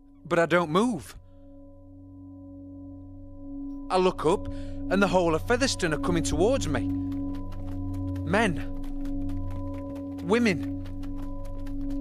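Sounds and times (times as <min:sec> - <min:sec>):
sustained musical drone: 0:01.6 - 0:12.0.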